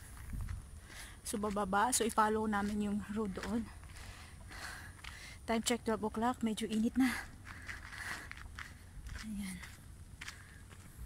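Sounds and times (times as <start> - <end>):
footsteps on stony dirt trail: 0.0 - 11.0.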